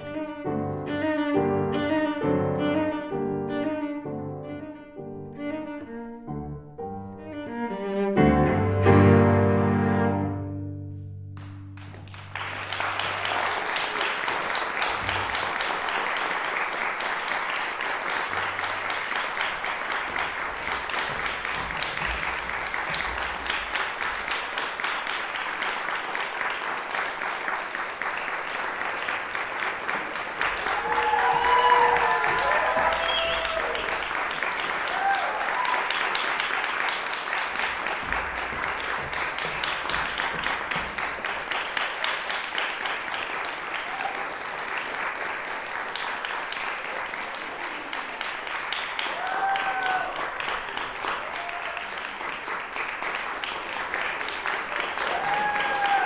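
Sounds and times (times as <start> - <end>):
audience applauding: 11.4 - 56.0
voices cheering: 30.6 - 34.0, 34.8 - 36.0, 49.1 - 50.4, 55.0 - 56.0.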